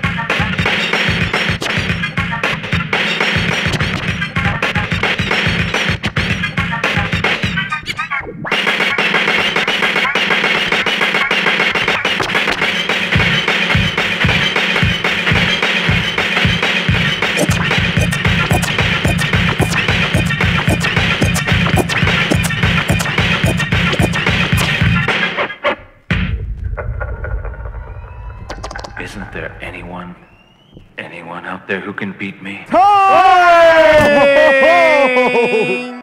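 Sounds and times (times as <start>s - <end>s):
turntable drum beat: 0.0s - 7.7s, 8.5s - 25.5s
low rumble: 26.1s - 31.0s.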